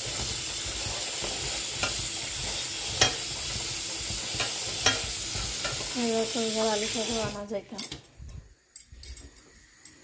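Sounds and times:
chickpeas stirred in colander: 0.0s - 7.8s
tap water running: 0.0s - 10.0s.

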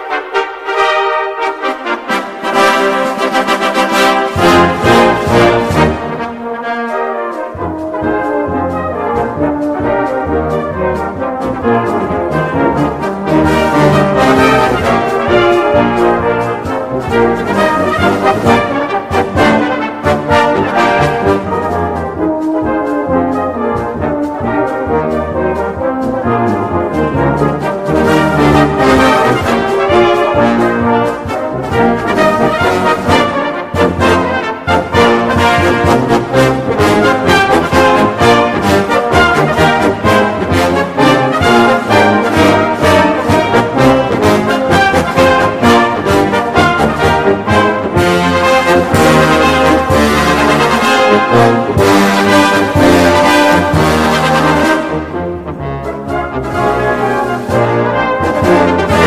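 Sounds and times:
brass band playing a march: 0.0s - 59.0s.

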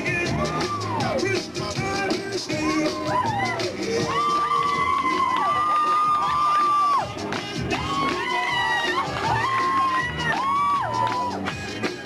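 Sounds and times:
crowd cheering and shouting: 0.0s - 12.0s
loud dance music with vocals: 0.0s - 12.0s.

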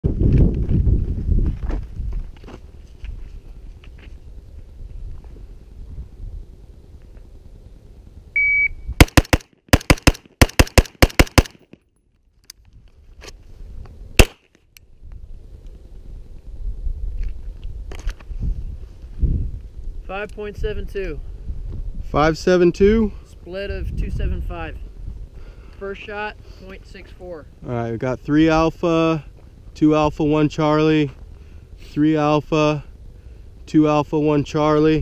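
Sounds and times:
wind rumbling on microphone: 0.0s - 9.0s, 12.6s - 14.2s, 14.8s - 35.0s
shot timer beep: 8.4s - 8.9s
pistol shot: 9.0s - 11.8s, 14.2s - 14.5s
rifle firing rapid shots: 9.0s - 11.8s, 14.2s - 14.4s.

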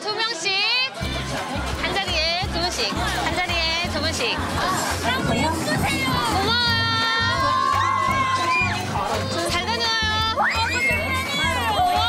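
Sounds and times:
music with steady beat: 1.0s - 12.0s
young women screaming: 7.1s - 8.9s, 10.3s - 12.0s.

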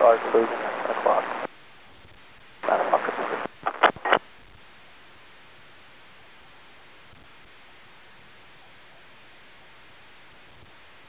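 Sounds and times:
radio transmission noise burst: 0.0s - 4.6s
faint receiver hiss: 0.0s - 4.7s.

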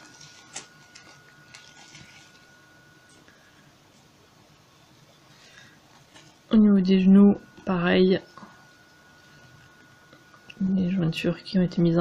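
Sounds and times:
doll dress rustling: 0.0s - 3.2s.

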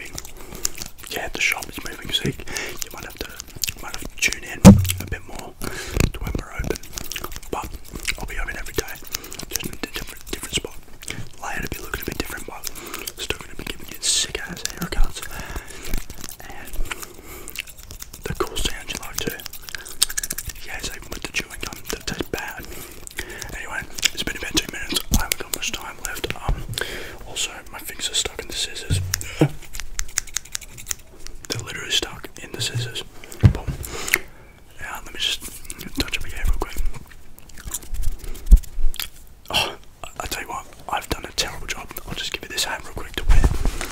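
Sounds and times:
man whispering into microphone: 0.0s - 0.4s, 1.0s - 17.6s, 18.2s - 19.8s, 20.5s - 29.7s, 31.5s - 33.9s, 34.7s - 37.0s, 39.5s - 43.8s
comb scraping microphone grille: 28.7s - 34.1s.

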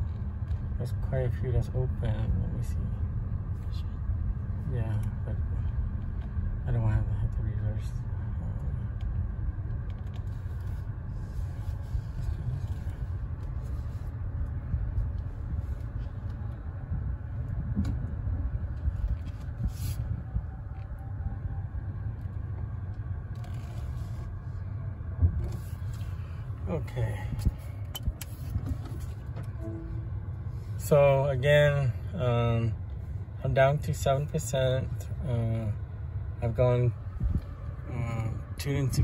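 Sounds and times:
low rumble inside car: 0.0s - 39.0s.

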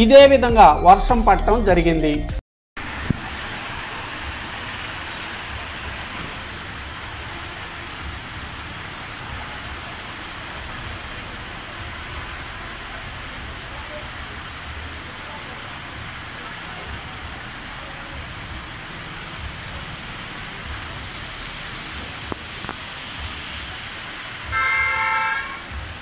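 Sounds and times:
rain on street and roofs: 2.8s - 26.0s.

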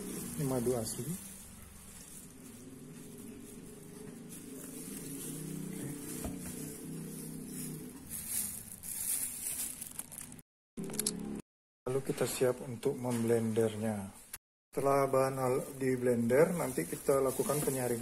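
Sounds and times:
rustling: 0.0s - 10.4s, 15.5s - 18.0s.

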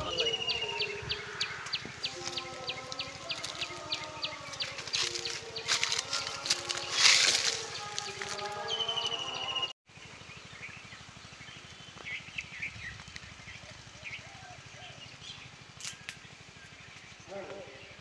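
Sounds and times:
birds chirping: 0.0s - 18.0s
outdoor background noise: 0.0s - 18.0s.

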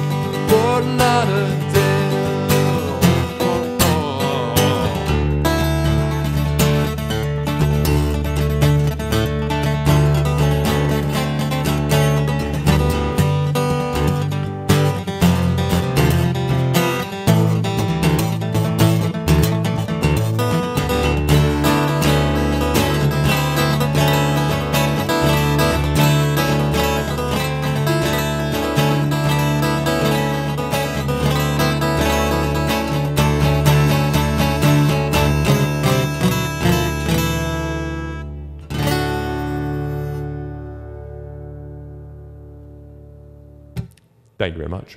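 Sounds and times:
acoustic guitar strumming: 0.0s - 44.2s.

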